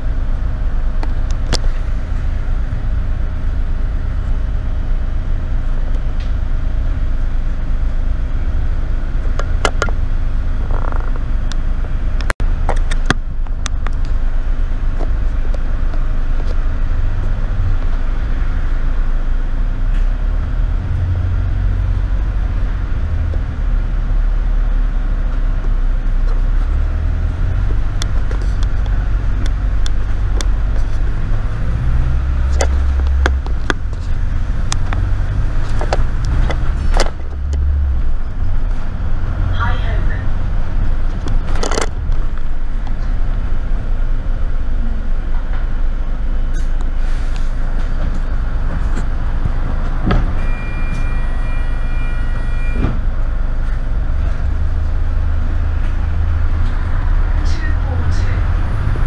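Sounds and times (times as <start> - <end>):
bus engine rumbling: 0.0 - 59.0
bodywork clicks and rattles: 27.6 - 38.9, 41.0 - 43.4.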